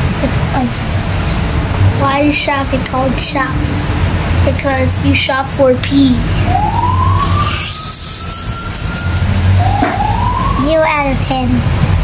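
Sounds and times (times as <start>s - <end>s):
siren rising in pitch: 6.4s - 10.9s.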